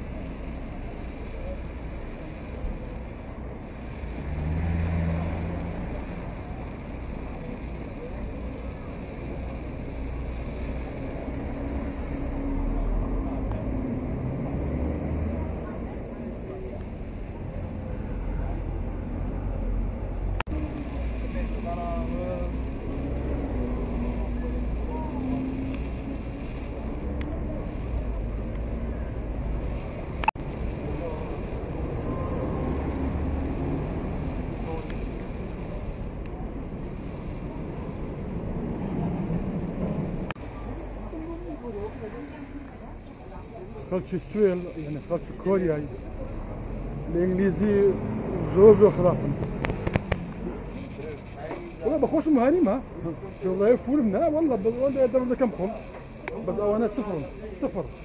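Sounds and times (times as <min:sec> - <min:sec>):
bus and car engines passing: 0:00.0 - 0:58.0
traffic rumble: 0:00.0 - 0:58.0.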